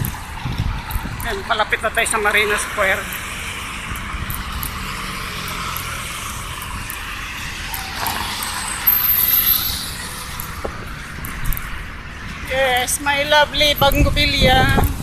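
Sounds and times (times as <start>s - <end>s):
cars passing: 0.0s - 15.0s.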